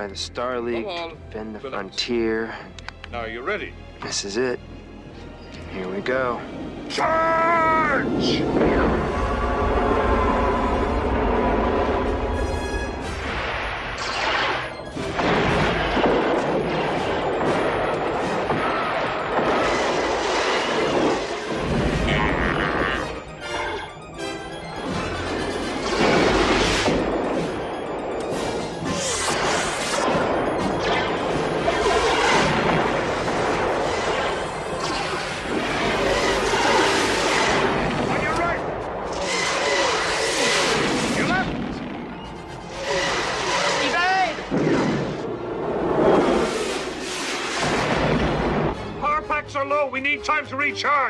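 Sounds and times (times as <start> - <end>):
orchestral score: 0.1 - 51.0
laser-fire sound effects: 13.3 - 24.8, 25.4 - 45.3
explosion booms: 47.5 - 48.8.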